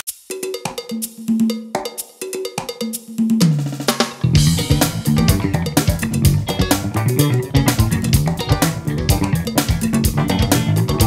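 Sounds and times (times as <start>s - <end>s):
funk drum groove: 0.0s - 11.0s
cowbell-like notes: 0.1s - 11.0s
full band playing: 3.7s - 11.0s.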